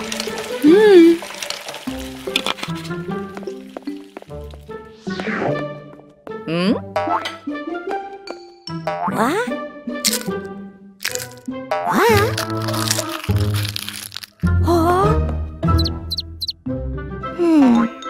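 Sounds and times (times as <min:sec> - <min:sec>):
playful cartoon music: 0:00.0 - 0:18.0.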